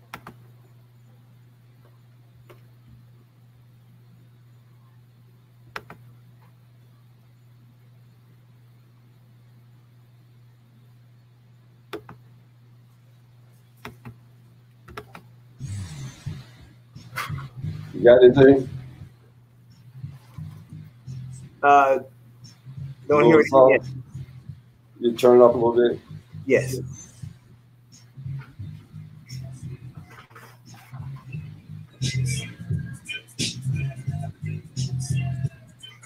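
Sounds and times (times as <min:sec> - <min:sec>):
low electrical hum: 0:00.0 - 0:36.0
muffled low-pitched sound: 0:15.6 - 0:33.0
faint guitar playing: 0:20.0 - 0:24.5.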